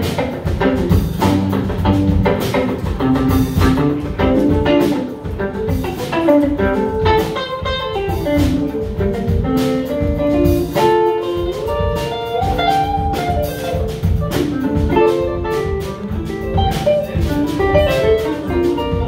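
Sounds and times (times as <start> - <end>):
drum kit: 0.0 - 19.0
electric bass: 0.0 - 19.0
electric guitar lines: 0.0 - 19.0.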